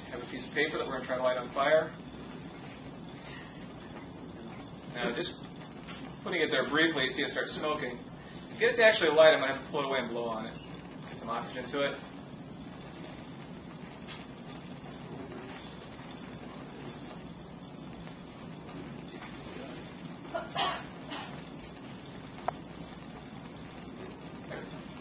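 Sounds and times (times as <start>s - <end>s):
bunsen burner rushing: 0.0s - 25.0s.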